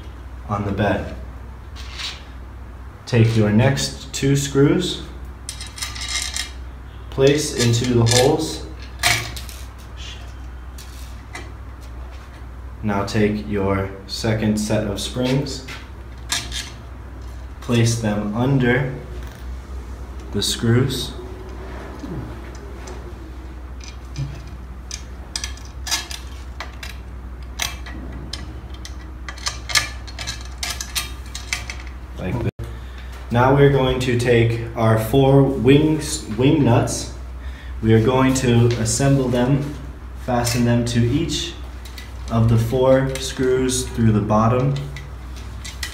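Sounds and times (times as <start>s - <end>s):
steady low hum: 0.0s - 45.9s.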